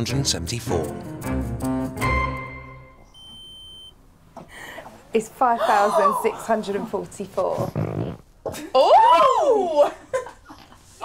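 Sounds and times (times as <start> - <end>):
electronic beep: 3.2 - 3.9.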